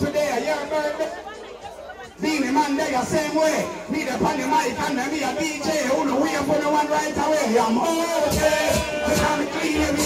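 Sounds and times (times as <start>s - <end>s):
man talking into a microphone: 0.0s - 1.4s, 2.0s - 10.0s
people chattering: 0.0s - 10.0s.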